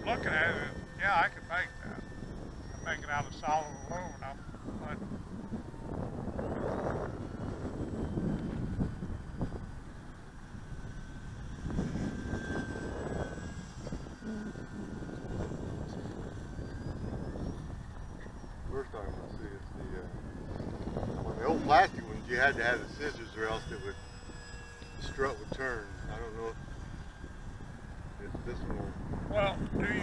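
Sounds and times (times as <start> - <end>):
model plane motor whining: 0.0 - 30.0.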